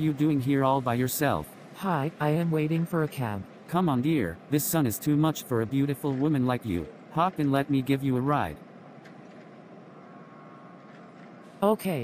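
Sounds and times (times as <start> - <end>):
faint street traffic hum: 0.0 - 12.0.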